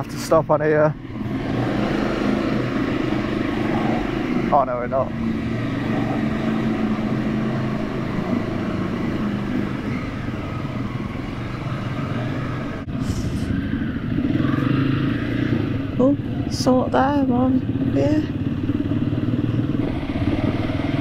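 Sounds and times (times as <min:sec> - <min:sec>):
other motorcycles running: 0:00.0 - 0:21.0
motorcycle engine running: 0:00.6 - 0:21.0.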